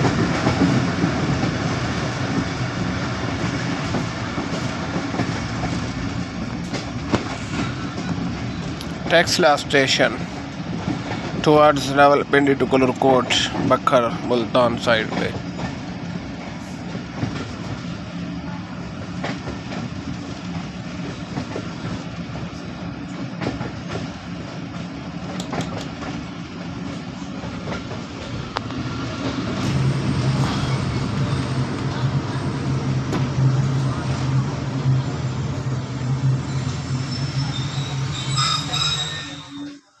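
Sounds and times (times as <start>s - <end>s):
train wheels rumbling on rails: 0.0s - 40.0s
sharp rail clicks: 23.4s - 26.3s, 27.6s - 29.8s.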